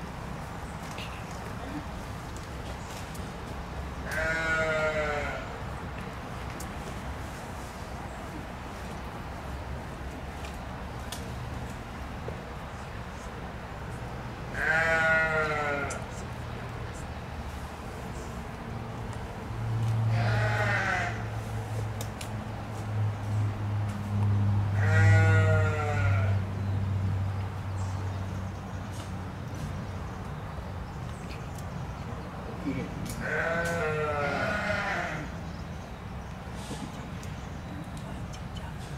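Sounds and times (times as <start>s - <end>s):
drawn-out bleat: 4.0s - 5.6s, 14.5s - 16.0s, 20.1s - 21.3s, 24.8s - 26.4s, 33.2s - 35.3s.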